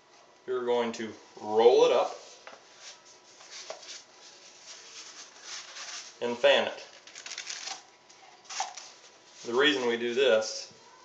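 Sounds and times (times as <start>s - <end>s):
paper rustling and rubbing: 2.0s - 7.8s, 8.4s - 10.0s.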